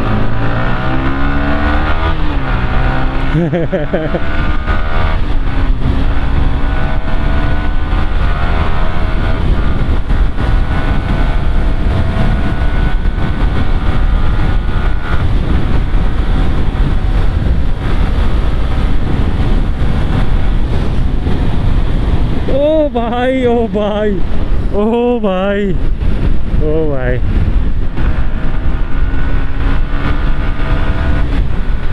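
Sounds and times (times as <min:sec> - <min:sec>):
motorcycle engine accelerating: 0:00.0 - 0:31.9
wind rush on microphone: 0:00.0 - 0:31.9.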